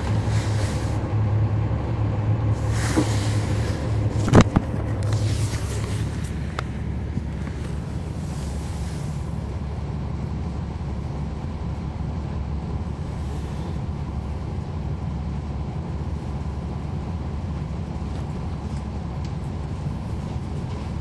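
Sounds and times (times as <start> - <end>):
bus diesel engine droning: 0.0 - 21.0
road noise: 0.0 - 21.0.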